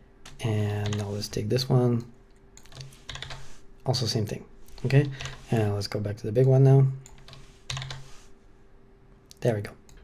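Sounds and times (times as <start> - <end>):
keyboard keystrokes: 7.1 - 8.0.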